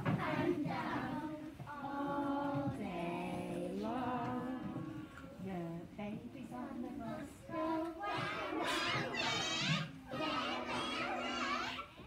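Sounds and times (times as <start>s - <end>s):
young children singing: 0.0s - 12.0s.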